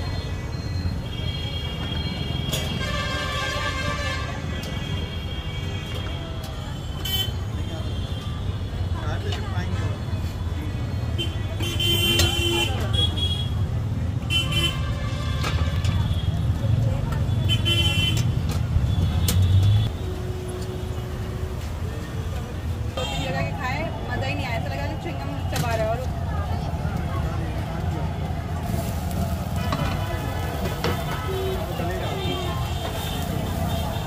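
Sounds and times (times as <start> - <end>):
traffic engine rumble: 0.0 - 34.0
people talking: 15.7 - 18.4, 21.6 - 34.0.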